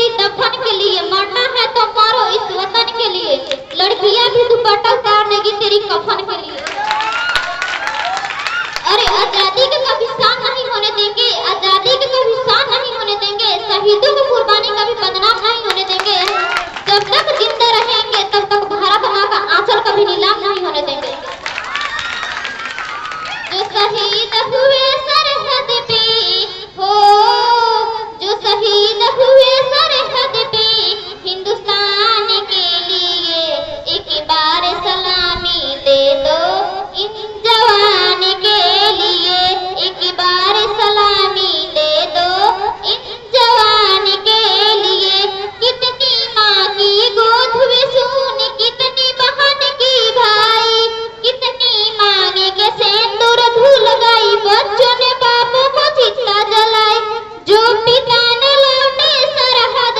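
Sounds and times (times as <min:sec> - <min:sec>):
girl singing into microphone: 0:00.0 - 0:06.7, 0:08.8 - 0:21.4, 0:23.2 - 0:59.9.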